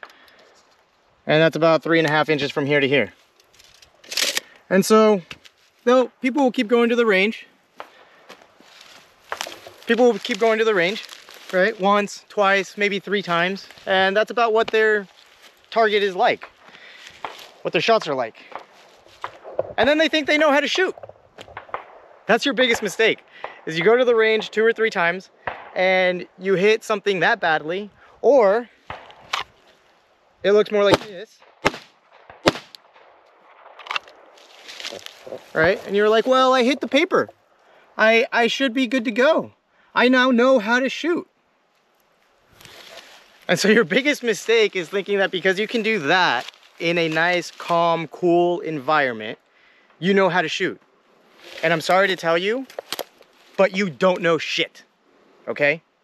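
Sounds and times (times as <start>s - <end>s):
footsteps in dry grass: 0.2s - 22.0s, 28.7s - 30.3s, 31.7s - 37.7s, 41.6s - 50.0s, 51.0s - 54.2s
man talking: 1.3s - 3.2s, 4.7s - 7.5s, 9.8s - 15.1s, 15.7s - 16.5s, 17.6s - 18.6s, 19.8s - 21.0s, 22.3s - 28.7s, 30.4s - 31.4s, 35.3s - 37.3s, 38.0s - 41.3s, 43.4s - 49.4s, 50.0s - 50.8s, 51.6s - 52.7s, 53.6s - 54.8s, 55.5s - 55.8s
handgun shot: 30.9s - 32.8s
camera handling noise: 52.7s - 53.3s.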